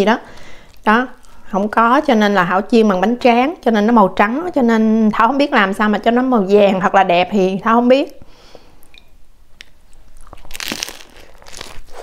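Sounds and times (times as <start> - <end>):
crunchy chewing: 9.6 - 12.0
crunching bite into fried roll: 10.2 - 12.0.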